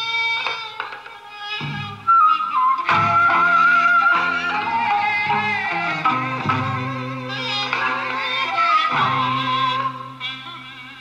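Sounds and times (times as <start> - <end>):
traditional instrument ensemble: 0.0 - 11.0.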